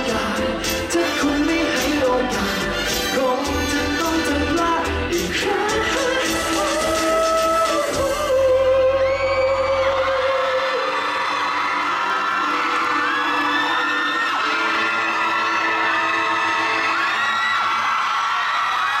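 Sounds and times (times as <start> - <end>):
pop song sung note over band: 0.0 - 11.4
audience cheering and screaming: 0.0 - 19.0.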